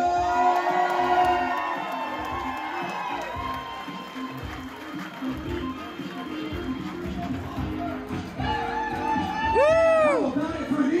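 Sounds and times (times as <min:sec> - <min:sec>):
crowd cheering: 0:00.0 - 0:10.4
upbeat entrance music: 0:00.0 - 0:11.0.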